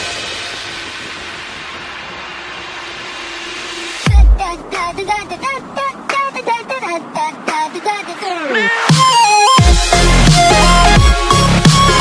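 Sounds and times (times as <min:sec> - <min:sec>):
hissing noise wash: 0:00.0 - 0:12.0.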